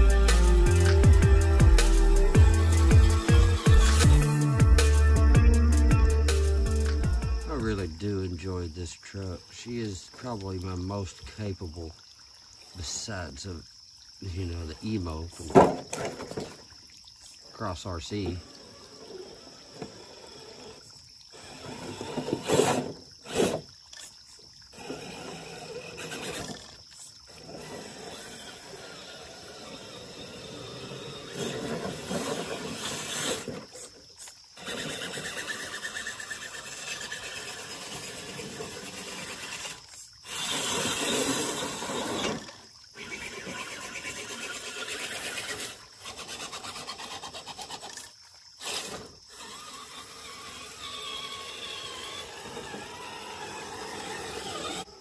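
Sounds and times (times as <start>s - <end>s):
tires splashing through water: 9.6s - 55.0s
toy car electric motor running: 18.4s - 23.7s, 24.7s - 34.0s, 34.6s - 55.0s.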